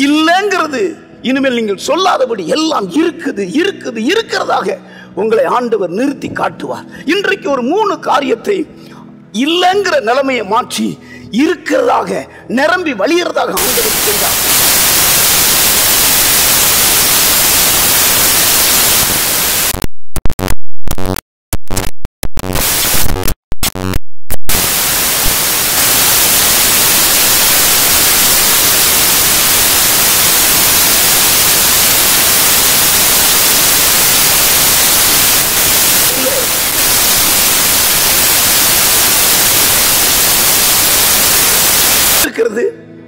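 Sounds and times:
loud static hiss: 13.5 - 42.4
choppy broken-up audio: 13.6 - 42.3.

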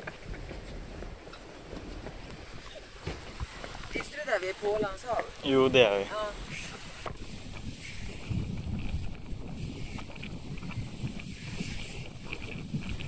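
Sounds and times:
steady hiss: 0.0 - 13.0
wind buffeting microphone: 0.0 - 13.0.

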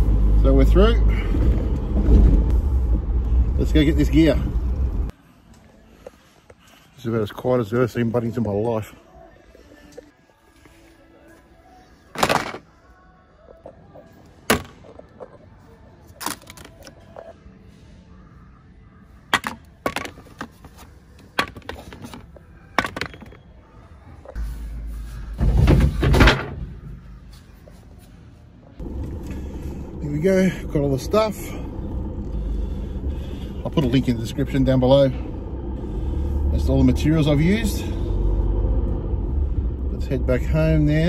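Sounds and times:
rushing rumble: 0.0 - 5.1, 28.8 - 41.0
low steady hum: 26.9 - 41.0.

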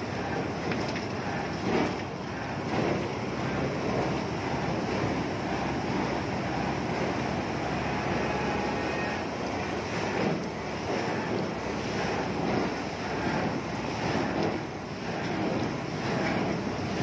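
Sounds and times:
heavy diesel machinery running: 0.0 - 17.0.

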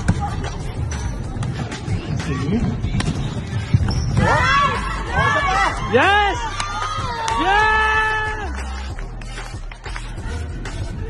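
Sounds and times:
shoes squeaking on court floor: 2.8 - 4.4.

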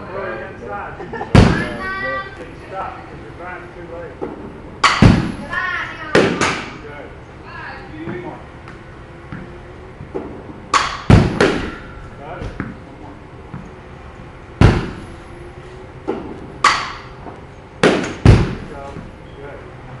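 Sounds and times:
bat hitting balls: 4.2 - 6.8, 10.0 - 12.0, 14.6 - 15.2, 16.0 - 19.1.

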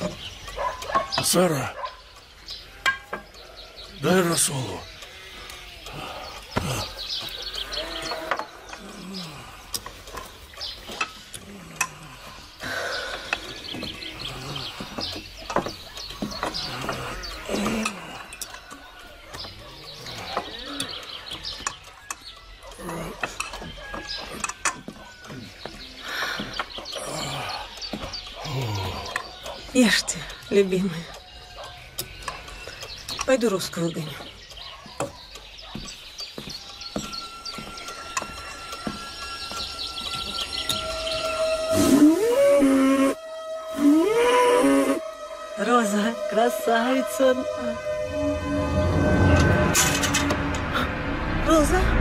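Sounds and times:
indistinct voices: 0.0 - 34.4, 36.9 - 52.0.

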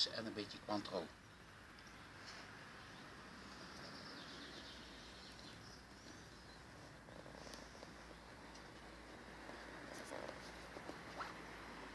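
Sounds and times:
faint bird chirps: 2.8 - 8.4.

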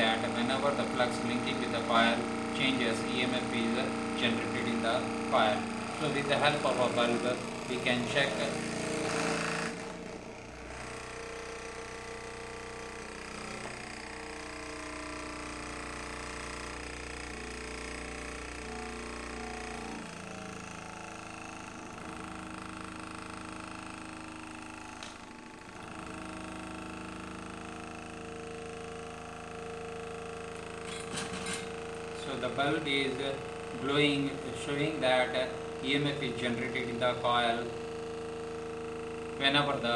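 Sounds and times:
small motor whining: 0.0 - 39.9.

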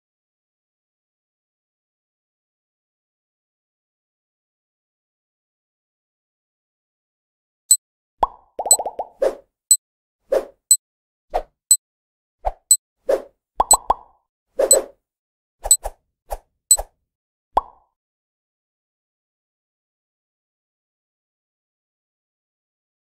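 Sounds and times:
cartoon pops and clicks: 8.2 - 9.2, 13.6 - 14.1, 17.6 - 17.8.

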